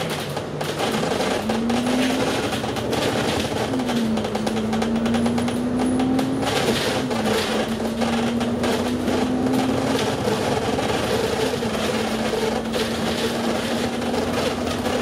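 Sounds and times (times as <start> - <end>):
bus engine whine: 0.0 - 15.0
road noise: 0.0 - 15.0.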